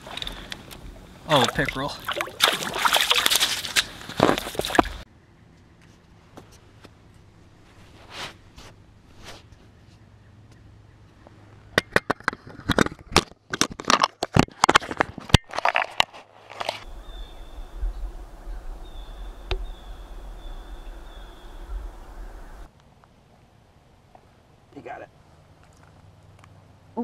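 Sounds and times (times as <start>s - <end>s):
wind rumble on microphone: 16.8s - 22.7s.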